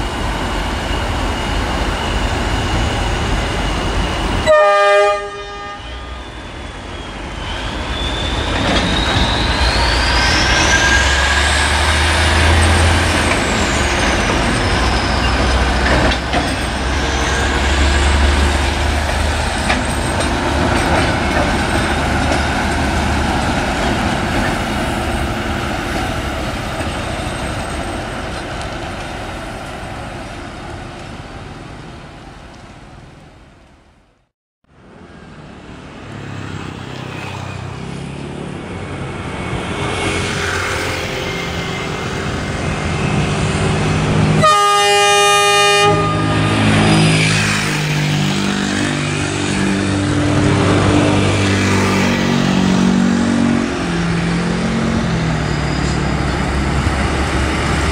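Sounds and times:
vehicle horn toot: 0:04.4 - 0:06.1, 0:44.4 - 0:46.5.

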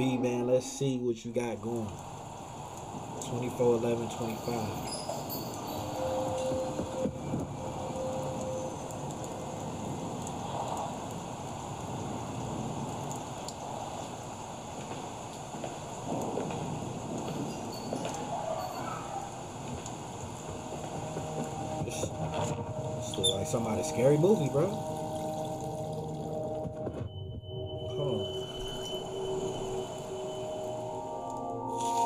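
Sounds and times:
steady hiss: 0:00.0 - 0:26.6
soft swells: 0:19.3 - 0:32.0
faint held tone: 0:21.4 - 0:32.0.

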